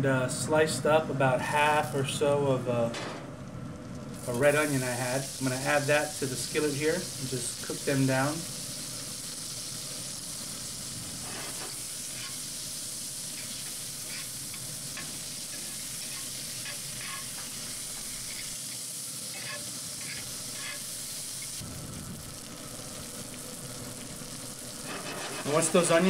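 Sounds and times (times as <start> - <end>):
onions sizzling in a skillet: 3.8 - 26.0
metal utensil stirring: 13.4 - 17.4, 19.3 - 20.8.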